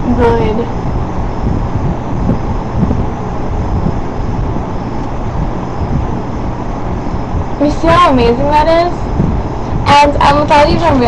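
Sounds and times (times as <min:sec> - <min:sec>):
box fan rushing air: 0:00.0 - 0:11.0.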